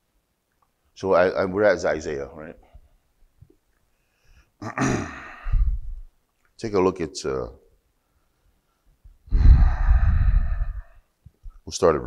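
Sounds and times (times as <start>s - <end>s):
man sighing into microphone: 4.6s - 6.0s.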